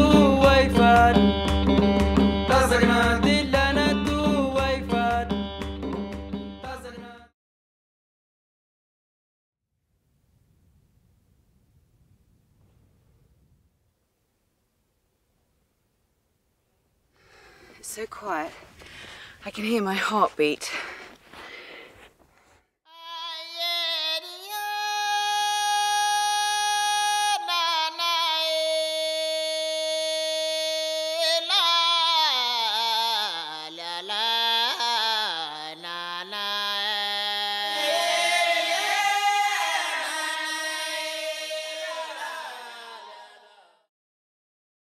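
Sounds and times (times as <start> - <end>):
wordless female singing: 22.9 - 43.6.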